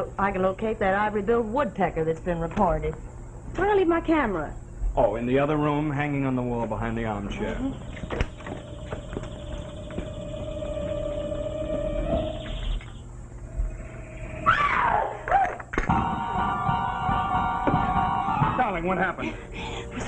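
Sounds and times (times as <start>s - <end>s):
woman screaming: 14.4s - 15.6s
dramatic music sting: 15.9s - 20.0s.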